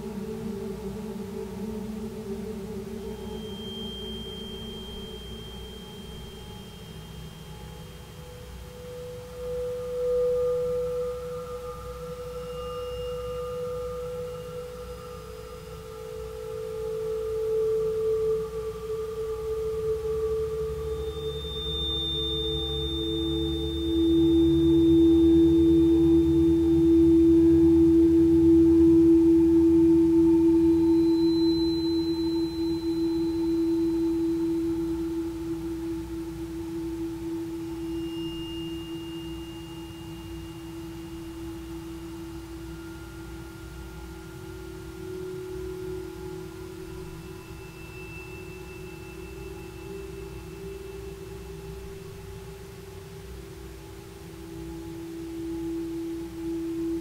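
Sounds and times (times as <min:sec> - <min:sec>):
crystal singing bowls ringing: 0:00.0 - 0:57.0
low hum: 0:00.0 - 0:57.0
thin high tones: 0:03.0 - 0:57.0.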